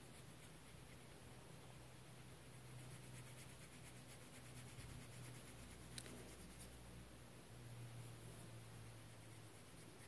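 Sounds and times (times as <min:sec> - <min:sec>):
brush scratching on paper: 0:00.0 - 0:06.8, 0:09.0 - 0:10.0.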